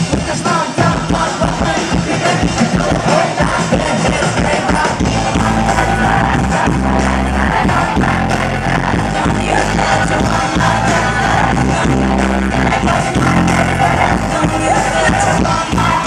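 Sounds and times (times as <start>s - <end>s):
live rock band: 0.0s - 16.0s
women singing: 0.5s - 16.0s.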